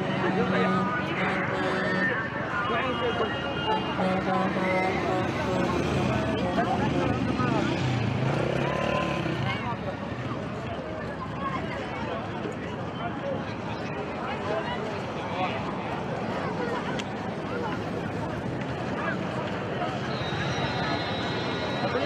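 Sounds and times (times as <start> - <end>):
traffic driving past: 0.0 - 13.0
people talking: 0.0 - 22.0
vehicle engine: 0.0 - 22.0.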